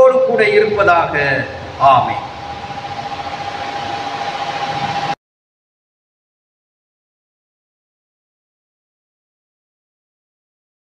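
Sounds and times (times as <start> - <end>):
electric fan running: 0.1 - 5.2.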